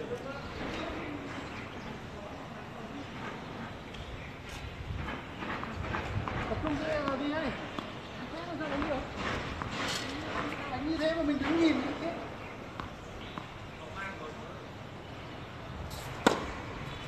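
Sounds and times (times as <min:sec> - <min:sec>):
voices talking: 0:06.3 - 0:15.2.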